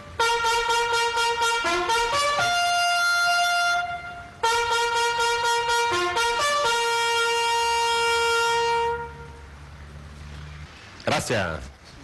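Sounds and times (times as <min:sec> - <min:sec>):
trumpet bugle call: 0:00.0 - 0:09.4.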